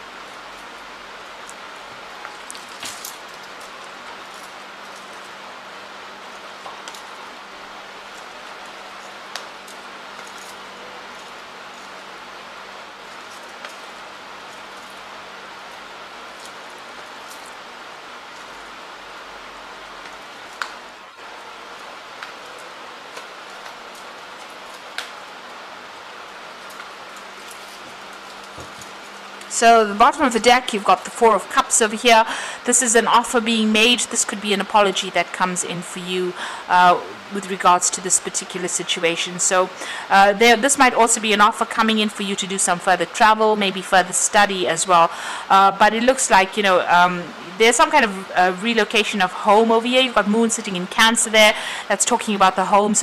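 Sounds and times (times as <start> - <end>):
faint steady hiss: 0.0 - 53.0.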